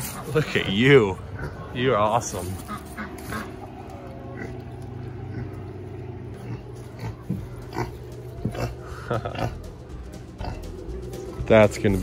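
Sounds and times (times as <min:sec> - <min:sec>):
pigs grunting: 0:00.0 - 0:09.8, 0:10.4 - 0:10.8
low hum: 0:01.1 - 0:12.0.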